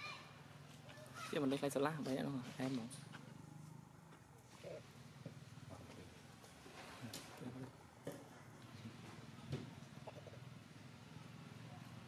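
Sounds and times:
faint macaque call: 0:00.9 - 0:01.4.

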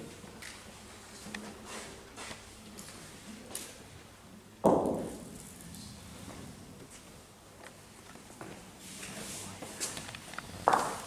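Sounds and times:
heavy ball thud: 0:04.6 - 0:05.3.

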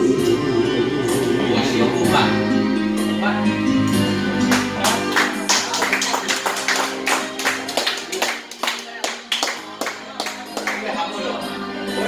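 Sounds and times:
karaoke ballad backing track: 0:00.0 - 0:12.0.

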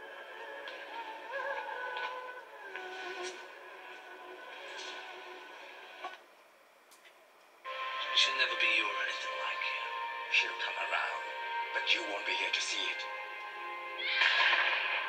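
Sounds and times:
film soundtrack music on television: 0:00.0 - 0:15.0
television channel sound: 0:00.0 - 0:15.0.

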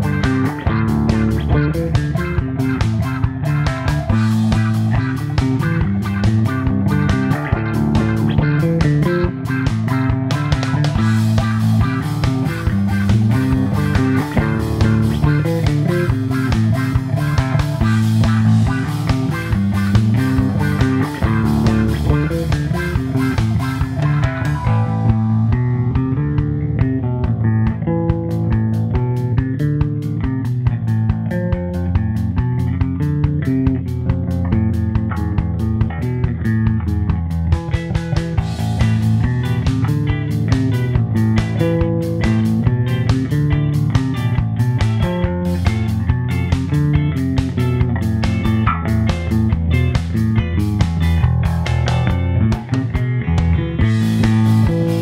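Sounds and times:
backing track with drum beat: 0:00.0 - 0:55.0
electric bass guitar plucked: 0:00.0 - 0:55.0.

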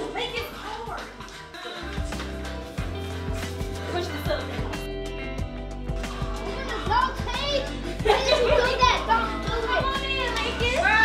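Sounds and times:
background music with beat: 0:00.0 - 0:11.0.

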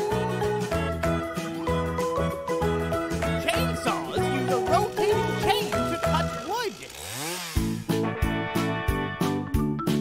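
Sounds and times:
children's music: 0:00.0 - 0:06.8, 0:08.0 - 0:10.0
toy chainsaw revving: 0:03.6 - 0:07.9.

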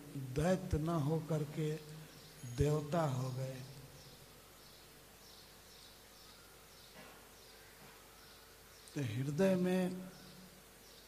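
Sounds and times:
low steady hum: 0:00.0 - 0:11.0
faint high chirps: 0:01.6 - 0:09.3.

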